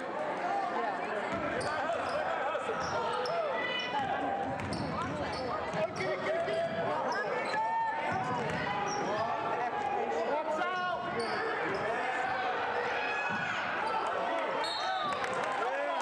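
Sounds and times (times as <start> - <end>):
voices of spectators and players: 0.0 - 16.0
sneaker squeaks: 1.3 - 4.0, 4.6 - 7.8, 10.7 - 12.0, 13.3 - 15.2.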